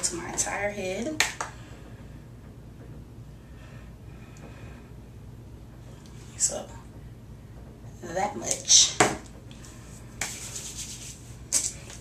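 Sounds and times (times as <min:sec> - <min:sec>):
hands rubbing damp hair: 0:09.6 - 0:12.0
hair swishes: 0:09.7 - 0:12.0.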